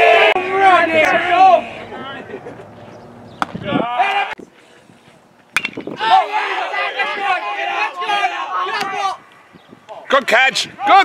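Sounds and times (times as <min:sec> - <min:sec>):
loud voices calling out: 0:00.0 - 0:05.1, 0:05.8 - 0:11.0
bat cracking ball: 0:03.4 - 0:03.6, 0:05.5 - 0:06.0.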